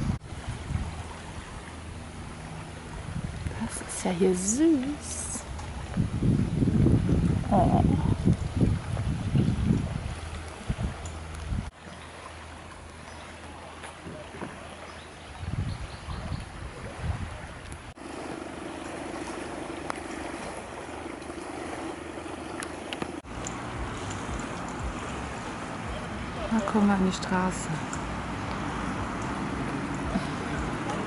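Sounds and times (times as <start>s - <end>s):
wind on microphone: 0.0s - 11.8s, 15.2s - 18.0s, 18.8s - 26.7s
outdoor ambience: 17.6s - 31.0s.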